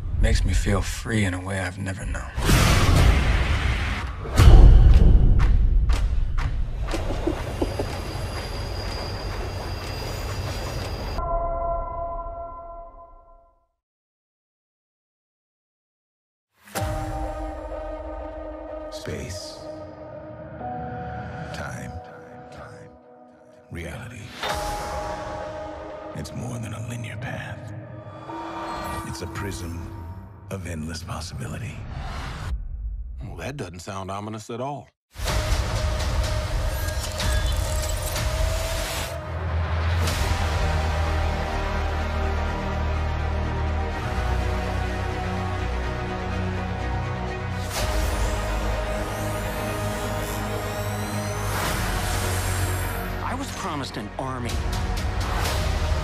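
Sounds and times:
ringing chord: 28.2s - 30.6s.

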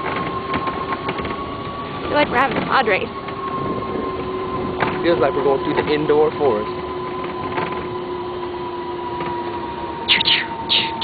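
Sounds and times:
vehicle engine humming: 0.0s - 11.0s
short sharp high-pitched sounds: 10.1s - 11.0s.

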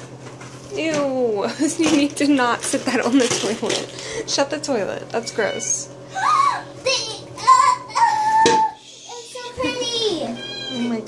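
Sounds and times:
girl squealing: 5.6s - 9.2s, 10.1s - 11.0s.

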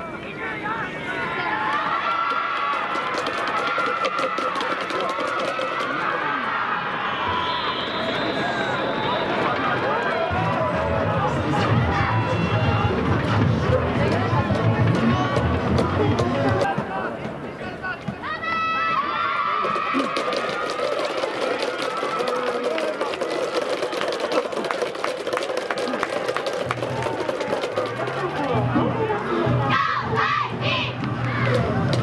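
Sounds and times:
crowd shouting and cheering: 0.0s - 32.0s
music: 10.3s - 16.7s, 26.3s - 32.0s.

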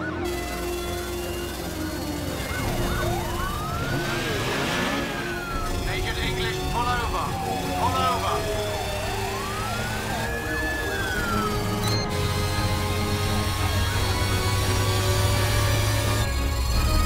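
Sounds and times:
police siren wailing: 0.0s - 17.0s
short chirping siren: 0.0s - 17.0s
vehicle engines rumbling: 0.0s - 17.0s.

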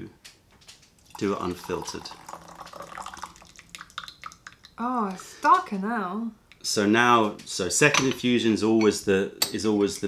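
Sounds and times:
tea trickling into glass pitcher: 1.0s - 4.8s.

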